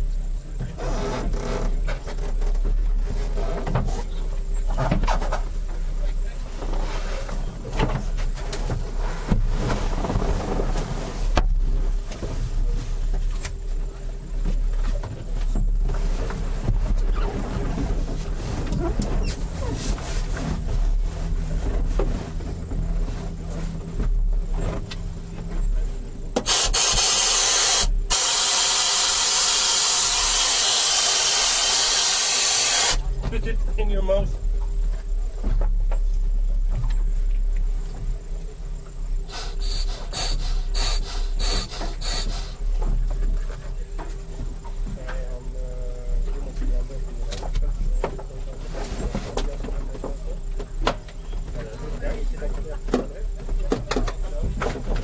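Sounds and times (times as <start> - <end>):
steady low rumble: 0.0 - 55.0
knocks bumps and rustling: 0.6 - 26.5, 46.5 - 55.0
loud steady hiss: 26.3 - 35.4, 37.8 - 42.9.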